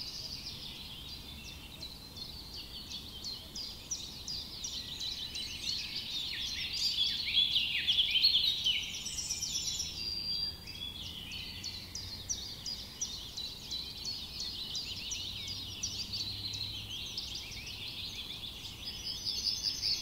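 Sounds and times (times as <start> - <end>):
songbirds chirping: 0.0 - 20.0.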